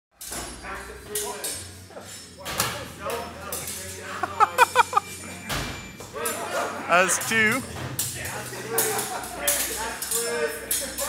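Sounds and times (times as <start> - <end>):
people talking and calling out: 6.2 - 7.8.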